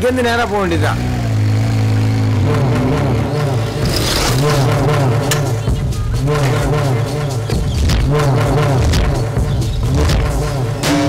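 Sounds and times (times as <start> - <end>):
motorcycle engine running: 0.0 - 11.0.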